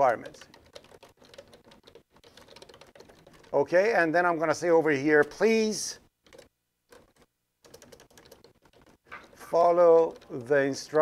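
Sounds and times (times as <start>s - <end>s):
computer keyboard typing: 0.0s - 3.7s, 6.2s - 11.0s.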